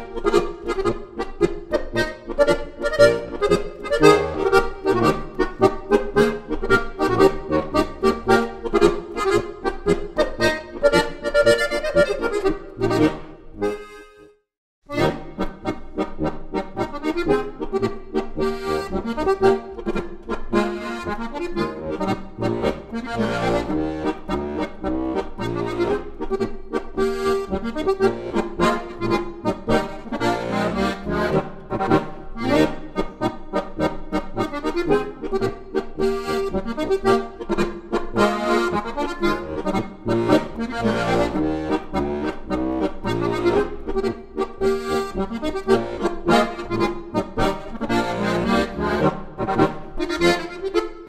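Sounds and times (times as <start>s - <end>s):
accordion music: 0.0s - 51.0s.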